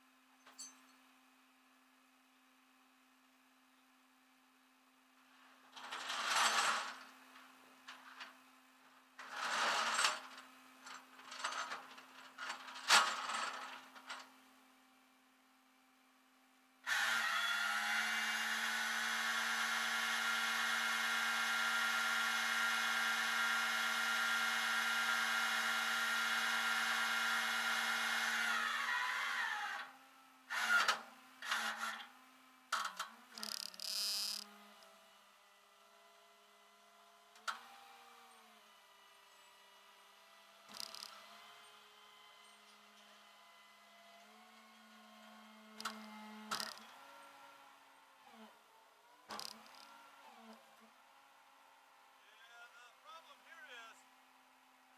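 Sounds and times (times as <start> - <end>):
hydraulic winch whine: 16.9 - 29.9, 30.5 - 32.1, 40.7 - 41.3, 45.2 - 48.6, 49.3 - 50.9.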